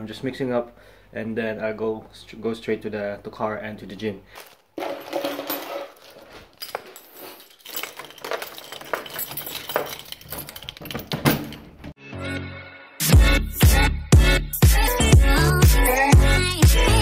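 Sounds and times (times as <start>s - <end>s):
keys jingling: 4.4s - 12.0s.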